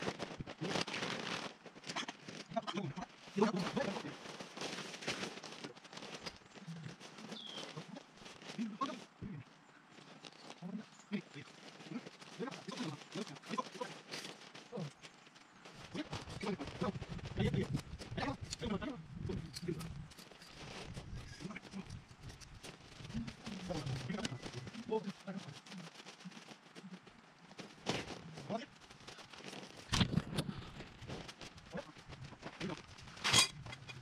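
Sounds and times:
tent fabric rustling and crinkling: 0.0s - 34.0s
men talking indistinctly: 15.9s - 19.9s, 23.1s - 25.9s.

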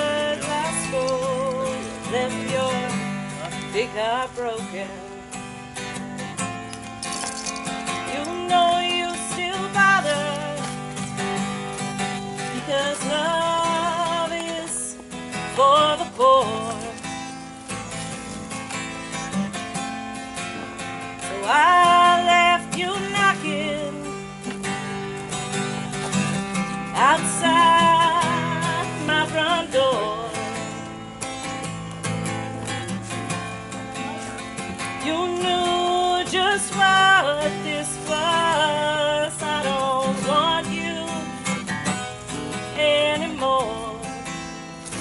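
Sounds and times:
woman singing: 0.0s - 5.4s, 7.9s - 11.5s, 12.1s - 17.4s, 21.2s - 24.6s, 26.9s - 30.9s, 34.8s - 44.5s
acoustic guitar strumming: 0.0s - 45.0s.

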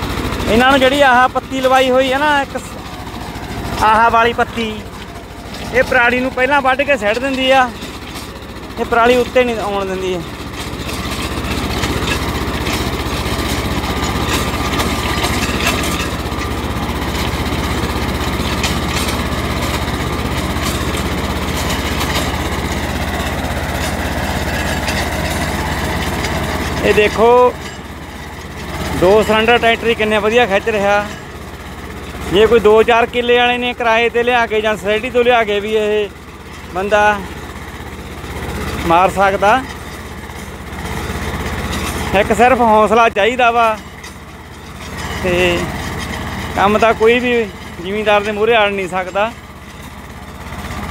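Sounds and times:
tractor engine chugging under load: 0.0s - 50.9s.

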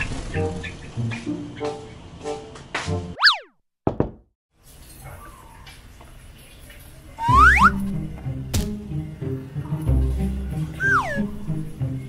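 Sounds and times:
cartoon springy boing: 3.2s - 3.5s, 7.2s - 7.8s, 10.8s - 11.2s.

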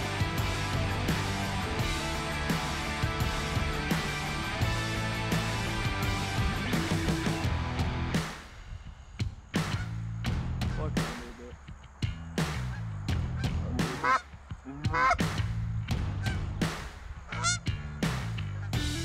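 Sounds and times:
background music with steady beat: 0.0s - 19.0s
geese honking: 13.4s - 14.3s, 14.9s - 15.3s, 16.2s - 16.6s, 17.3s - 17.7s.

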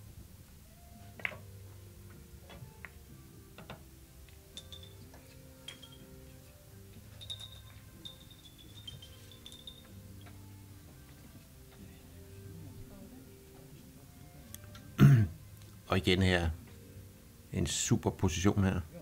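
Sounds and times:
billiard balls clicking: 3.6s - 6.0s.

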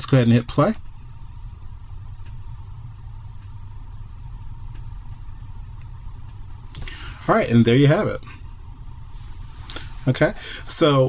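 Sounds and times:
low hum: 0.0s - 11.0s
faint ticks: 2.2s - 2.5s, 3.3s - 3.6s, 4.6s - 5.2s.

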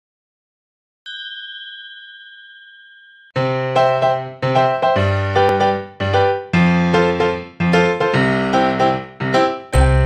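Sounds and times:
bell ding ringing: 1.1s - 3.4s.

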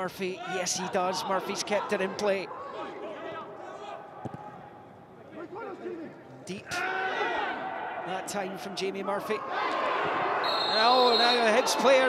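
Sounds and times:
players shouting: 6.7s - 12.0s.

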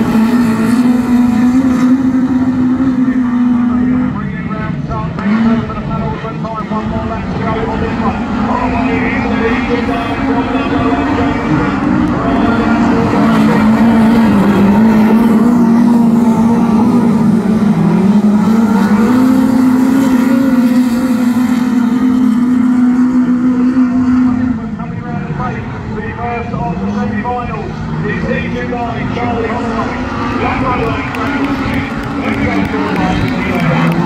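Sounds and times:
race car engines: 0.0s - 34.0s.

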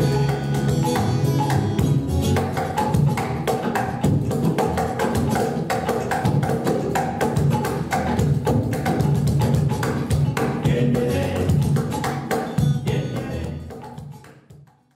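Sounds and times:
upright bass line: 0.0s - 14.2s
acoustic band music: 0.0s - 14.6s
hand drums: 0.0s - 14.9s.

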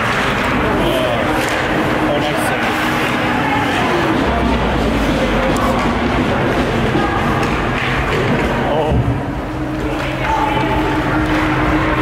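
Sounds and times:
players and spectators calling out: 0.0s - 12.0s.

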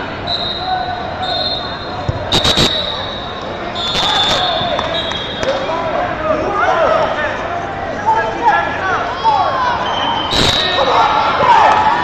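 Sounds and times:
crowd chatter echoing: 0.0s - 12.0s
short shrill bursts: 2.3s - 3.2s.

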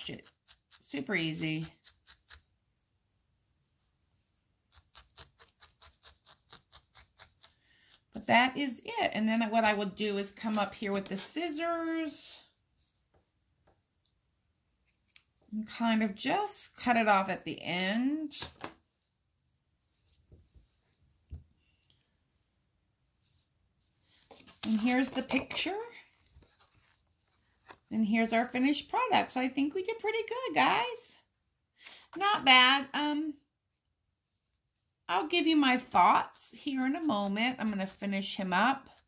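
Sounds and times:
felting needle poking foam: 0.0s - 2.7s, 4.5s - 8.2s.

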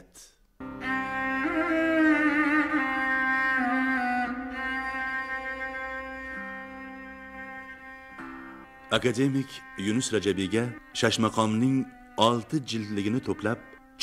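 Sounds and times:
bowed string long notes: 0.6s - 14.0s.

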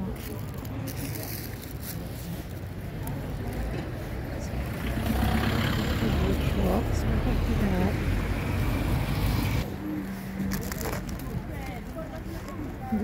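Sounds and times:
people talking: 0.0s - 8.2s, 9.6s - 13.0s
vehicle engine rumble: 0.0s - 13.0s.

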